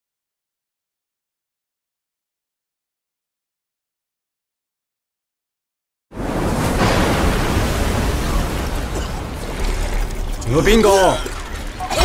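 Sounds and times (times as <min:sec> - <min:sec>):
heavy waves of rough sea: 0:06.1 - 0:12.0
wind: 0:06.1 - 0:12.0.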